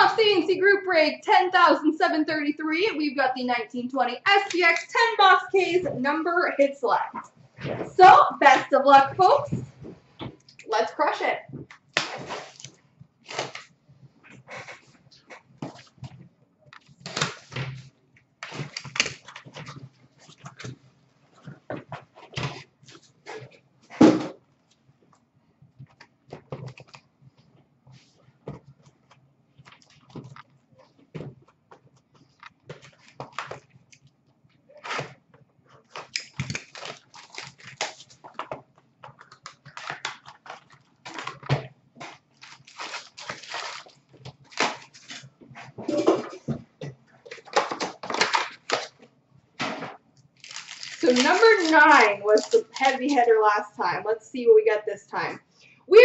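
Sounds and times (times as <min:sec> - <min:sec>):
cardboard and tape ripping: 0:12.0 - 0:13.7, 0:17.0 - 0:17.8, 0:35.9 - 0:38.4, 0:39.6 - 0:45.3, 0:47.2 - 0:49.0, 0:49.6 - 0:53.3
cardboard and wrappers rustling: 0:25.8 - 0:33.9, 0:34.7 - 0:53.5.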